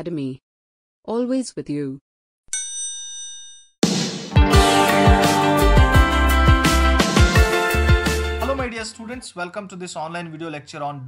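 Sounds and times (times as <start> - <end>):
bell-like ding: 2.5 - 3.8
music: 3.8 - 9.2.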